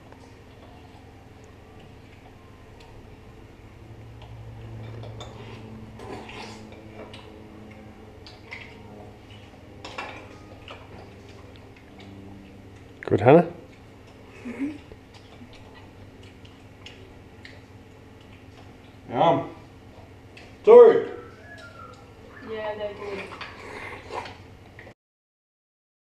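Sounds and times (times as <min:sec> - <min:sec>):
low hum: 0:00.0 - 0:24.8
forks and shells clinking on plates: 0:09.8 - 0:11.0.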